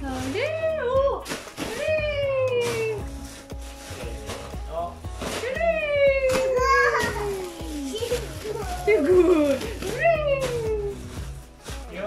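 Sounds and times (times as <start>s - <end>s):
background music: 0.0s - 12.0s
toddler squealing: 6.4s - 9.1s.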